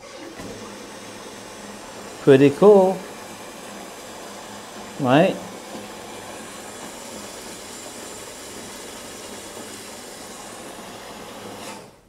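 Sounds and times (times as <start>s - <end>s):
jet pump humming: 0.0s - 12.0s.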